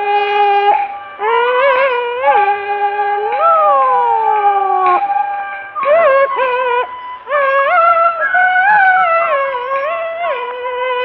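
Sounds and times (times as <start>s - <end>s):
falsetto opera singing: 0.0s - 5.2s
bamboo flute note: 0.0s - 10.4s.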